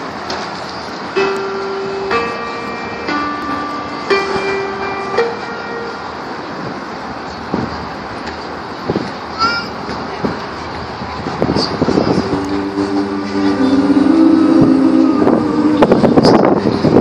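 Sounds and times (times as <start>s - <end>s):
outdoor background hubbub: 0.0s - 17.0s
steady pitch notes: 1.2s - 7.0s, 11.8s - 17.0s.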